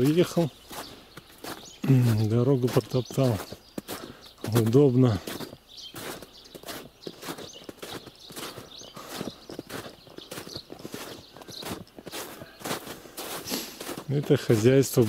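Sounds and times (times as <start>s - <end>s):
footsteps on trodden snow: 0.0s - 15.0s.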